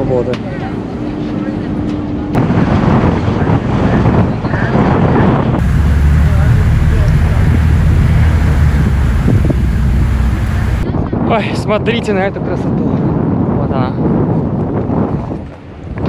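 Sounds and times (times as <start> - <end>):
wind buffeting microphone: 2.4 - 16.0
passengers' voices: 5.6 - 10.8.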